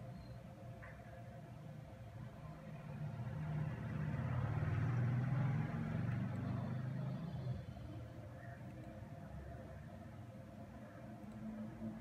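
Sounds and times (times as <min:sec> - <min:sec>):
passing vehicle rumble: 0:02.8 - 0:07.8.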